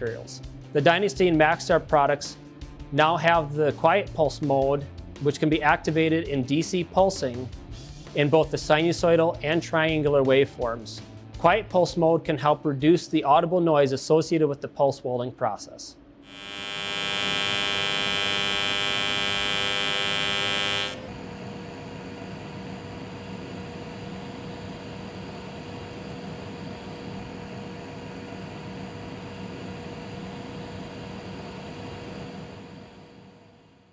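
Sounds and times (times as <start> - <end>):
welding arc buzzing: 16.2 - 33.9
welding arc soft hiss: 16.3 - 33.3.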